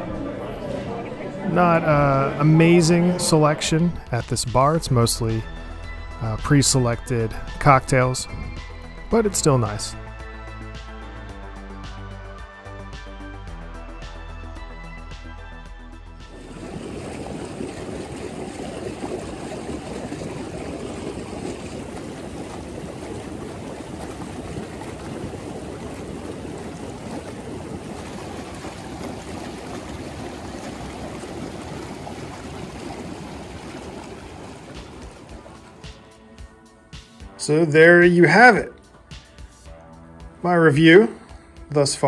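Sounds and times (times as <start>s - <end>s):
hot tub jets bubbling: 0.0s - 10.4s, 16.2s - 38.6s
background music: 0.0s - 19.2s, 32.8s - 42.0s.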